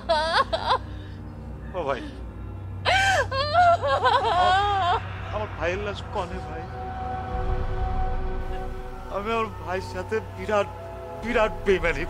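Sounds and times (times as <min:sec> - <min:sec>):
person sobbing and crying out: 0:02.9 - 0:05.2.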